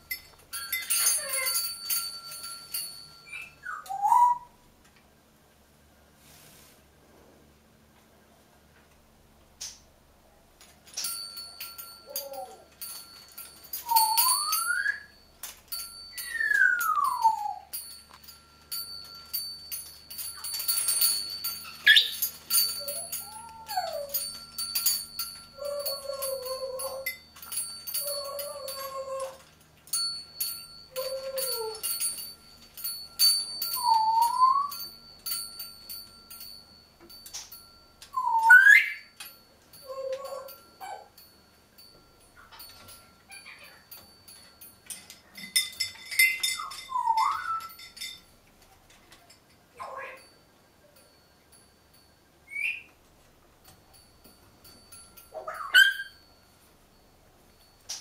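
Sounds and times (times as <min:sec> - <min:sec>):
metal spoons clicking and jangling: 0:00.0 - 0:03.7, 0:10.7 - 0:52.6, 0:53.6 - 0:58.0
parrot whistling: 0:03.2 - 0:04.6, 0:33.8 - 0:34.8, 0:38.2 - 0:39.1, 0:46.2 - 0:47.7, 0:52.5 - 0:52.9.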